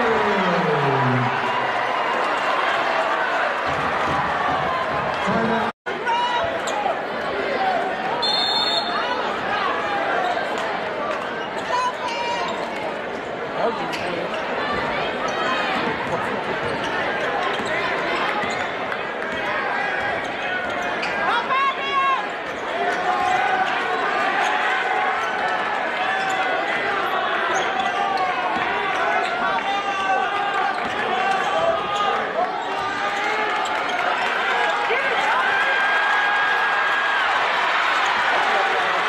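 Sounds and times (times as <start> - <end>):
crowd talking: 0.0 - 39.0.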